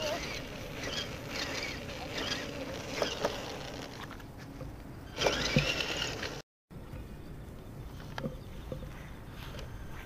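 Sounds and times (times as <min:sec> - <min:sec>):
electric motor whine: 0:00.0 - 0:04.1, 0:05.1 - 0:06.4.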